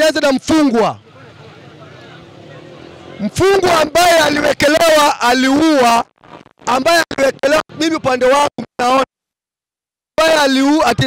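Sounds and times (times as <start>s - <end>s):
low street rumble: 0.4s - 6.0s
faint distant voices: 1.0s - 4.8s.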